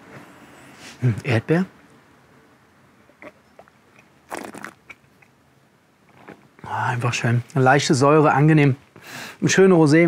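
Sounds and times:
mouth clicks: 3.1 - 5.4
man sipping from glass: 4.3 - 4.8.

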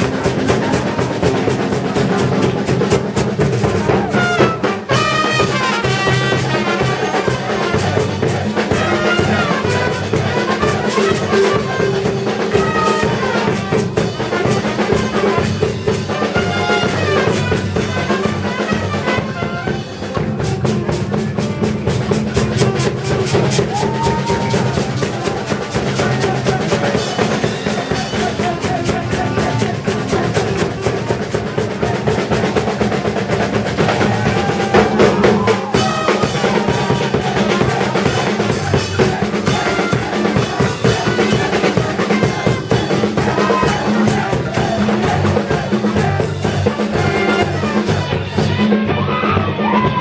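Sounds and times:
drum kit beat: 0.0 - 50.0
upbeat band music: 0.0 - 50.0.

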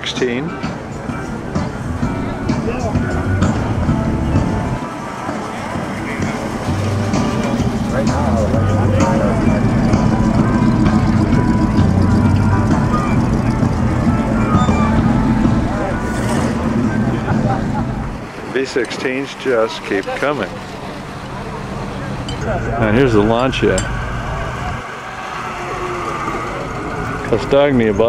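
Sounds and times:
car engines humming: 0.0 - 28.0
crowd chatter: 0.0 - 28.0.

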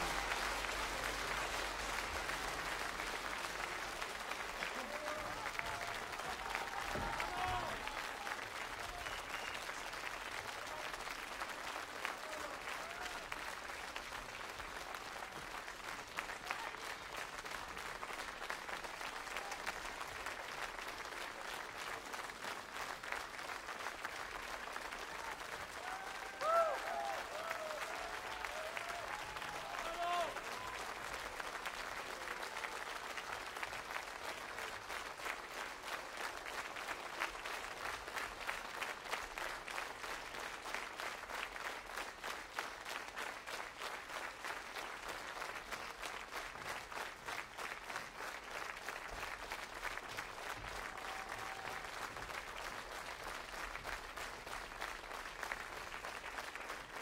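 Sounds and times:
large audience applauding: 0.0 - 57.0.

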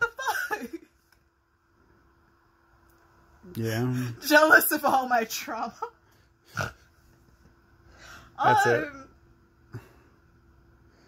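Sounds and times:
woman laughing: 0.0 - 0.9.

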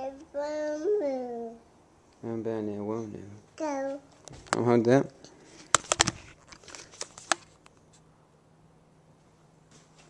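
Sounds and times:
sharp clicks and knocks: 5.7 - 7.7.

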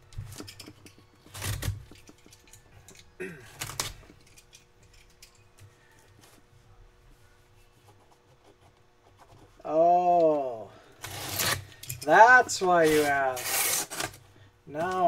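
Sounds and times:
faint handling sounds: 0.0 - 9.6.

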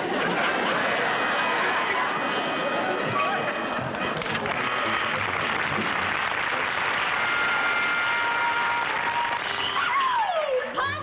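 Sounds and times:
audience laughing and applauding: 0.0 - 10.9.

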